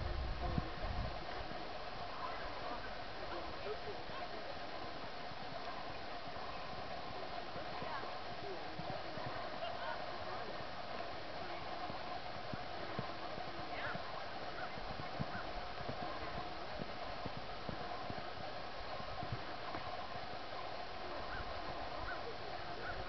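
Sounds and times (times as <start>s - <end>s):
horse hoofbeats on sand: 5.4s - 23.0s.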